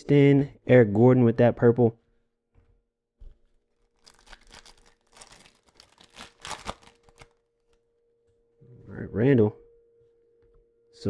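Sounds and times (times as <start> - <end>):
foil pack tearing and crinkling: 3.7 - 7.4.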